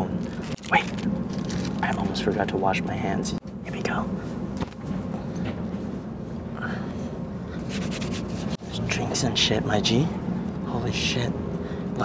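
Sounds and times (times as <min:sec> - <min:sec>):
towel rubbing hands: 0:07.6 - 0:08.6.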